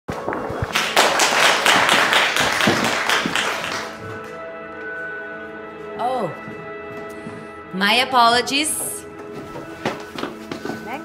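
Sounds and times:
audience applauding: 0:00.4 - 0:04.2.

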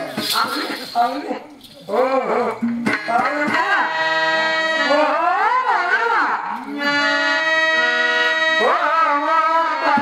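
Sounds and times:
person singing: 0:01.9 - 0:10.0
harmonium: 0:02.0 - 0:10.0.

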